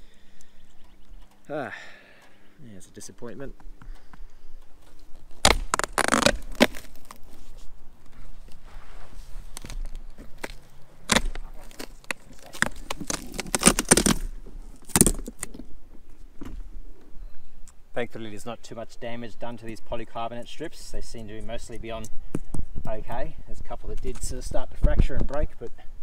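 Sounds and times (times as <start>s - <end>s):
tape tearing and plastic cracking: 4.8s - 8.6s, 9.4s - 15.7s.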